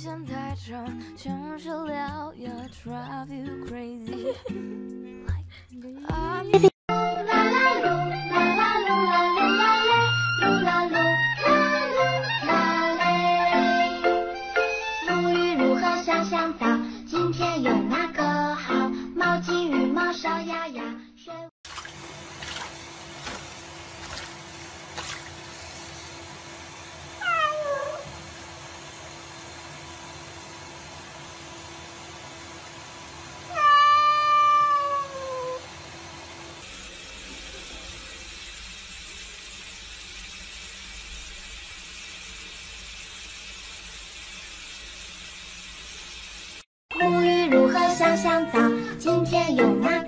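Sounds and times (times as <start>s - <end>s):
tap water hissing: 21.6s - 46.7s
cat meowing: 27.2s - 28.1s, 33.5s - 35.6s.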